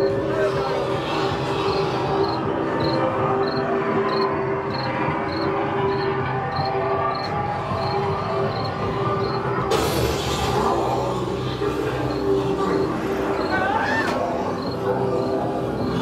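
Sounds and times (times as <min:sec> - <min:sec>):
dense ambient drone: 0:00.0 - 0:16.0.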